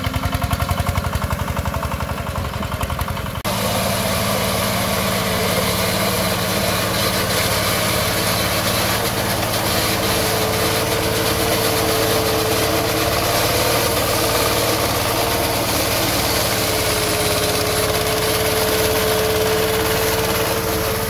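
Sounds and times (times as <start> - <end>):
combine harvester engine hum: 0.0 - 21.0
steady machine whine: 3.4 - 21.0.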